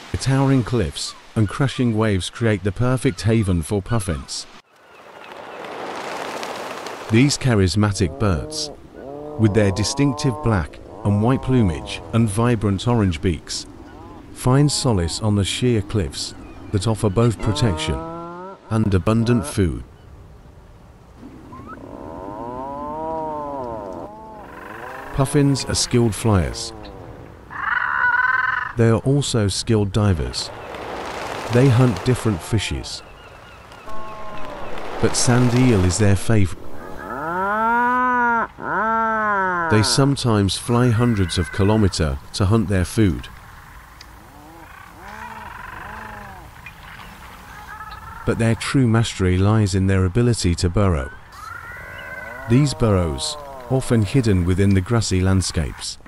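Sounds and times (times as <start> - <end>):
seabirds calling: 2.9 - 20.2, 21.1 - 28.8, 29.7 - 48.8, 50.8 - 55.8.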